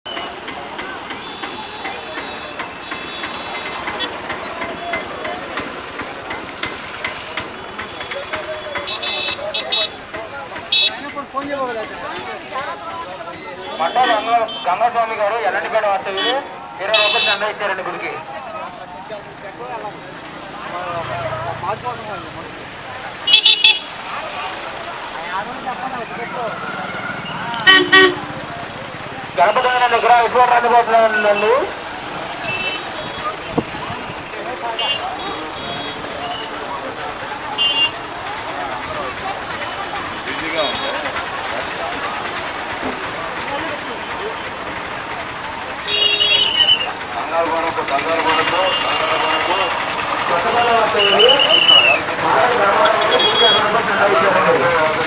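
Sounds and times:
crowd chatter: 0:00.0 - 0:55.0
motorbike traffic noise: 0:00.0 - 0:55.0
vehicle horn tooting: 0:01.2 - 0:04.2, 0:08.0 - 0:10.0, 0:10.7 - 0:11.0, 0:13.6 - 0:14.8, 0:16.1 - 0:17.5, 0:23.2 - 0:24.0, 0:26.6 - 0:28.3, 0:32.4 - 0:34.1, 0:34.8 - 0:36.6, 0:37.6 - 0:38.0, 0:40.5 - 0:41.0, 0:45.8 - 0:47.0, 0:48.1 - 0:49.8, 0:52.6 - 0:53.9
vehicle horn blasts: 0:08.8 - 0:10.0, 0:10.7 - 0:11.0, 0:16.9 - 0:17.4, 0:23.3 - 0:23.9, 0:27.6 - 0:28.3, 0:37.6 - 0:38.0, 0:45.8 - 0:46.9, 0:52.8 - 0:53.8.

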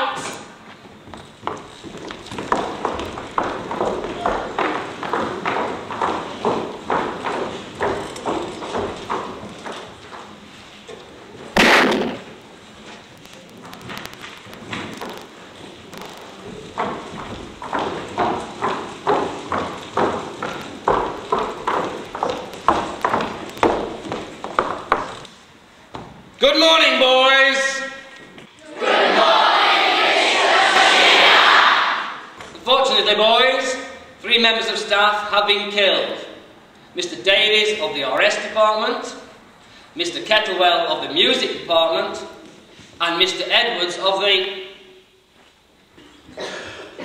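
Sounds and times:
marching footsteps on wooden floor: 0:00.7 - 0:10.7, 0:14.5 - 0:25.3
loud bang: 0:11.6 - 0:12.4.

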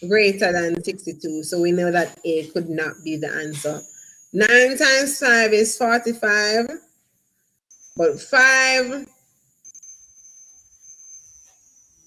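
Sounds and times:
high-pitched electronic whine: 0:00.6 - 0:06.7, 0:07.7 - 0:12.0.

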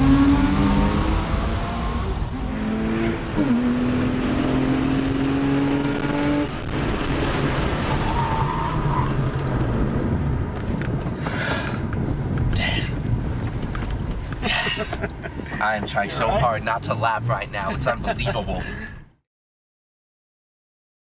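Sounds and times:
car engine revving: 0:00.0 - 0:10.1.

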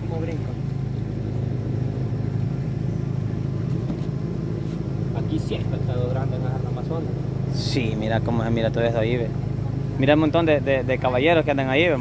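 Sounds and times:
outboard motor running: 0:00.0 - 0:12.0.

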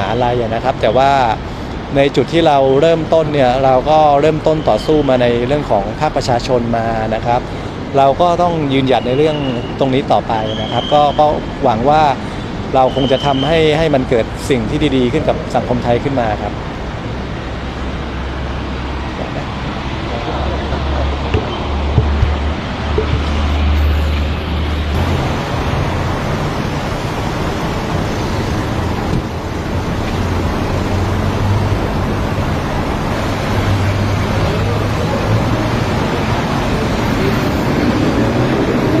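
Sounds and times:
traffic: 0:00.0 - 0:39.0.

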